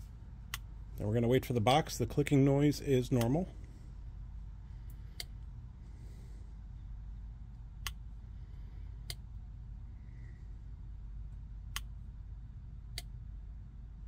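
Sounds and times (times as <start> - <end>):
low steady hum: 0.0 - 14.0.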